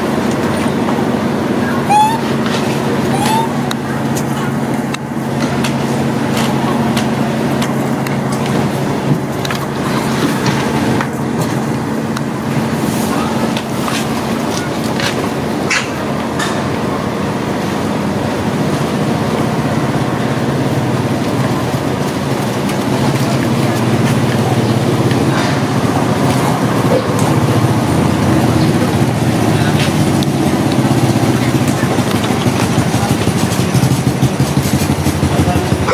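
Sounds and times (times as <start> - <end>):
engine running steadily: 0.0 - 35.9.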